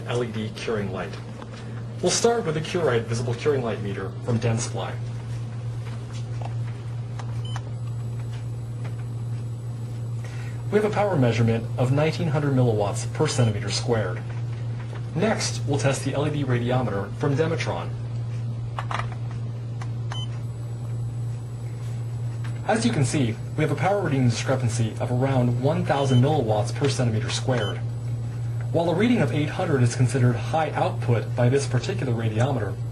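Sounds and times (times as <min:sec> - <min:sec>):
low electrical hum: 0:00.0 - 0:32.9.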